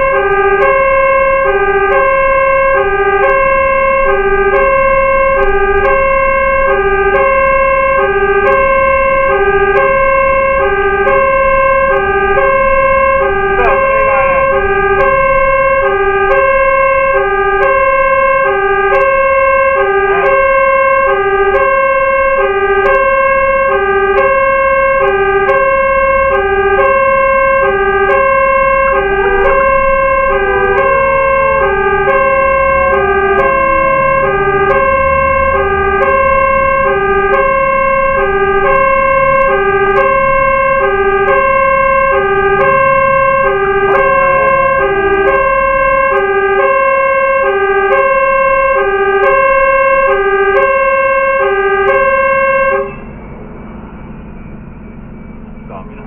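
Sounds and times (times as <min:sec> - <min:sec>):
falling siren wail: 0:00.0 - 0:56.0
truck engine rumble: 0:00.0 - 0:56.0
two-tone fire truck siren: 0:00.0 - 0:56.0.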